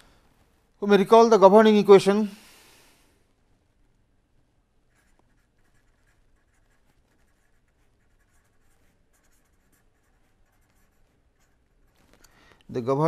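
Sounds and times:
pen scratching on paper: 4.9 - 12.2.

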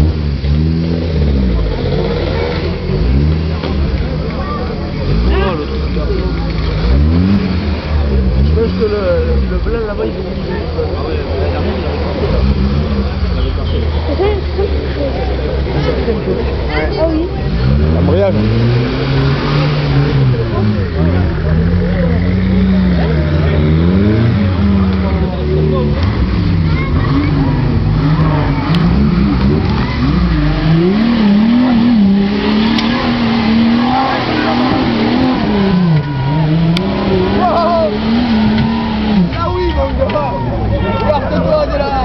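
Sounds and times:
off-road vehicle engine revving: 0.0 - 42.0
spectators talking: 0.0 - 42.0.

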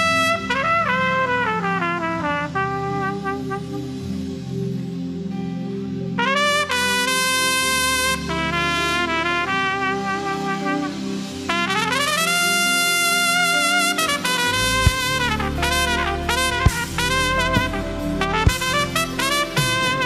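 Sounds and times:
trumpet melody: 0.0 - 5.2, 5.9 - 20.0
low held chords: 0.0 - 20.0.

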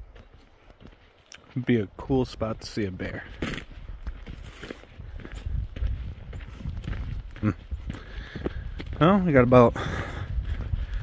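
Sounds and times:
footsteps on dirt trail: 0.0 - 11.0.

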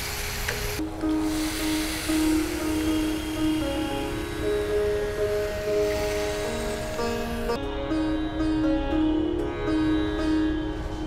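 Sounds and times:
pan sizzling: 0.0 - 7.6
instrumental background music: 0.1 - 11.0.

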